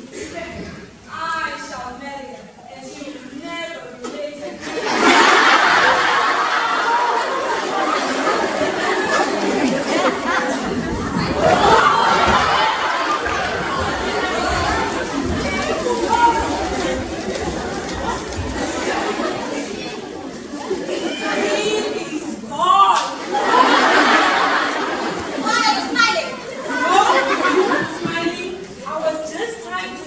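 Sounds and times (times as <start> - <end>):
people talking at once: 0.0 - 30.0.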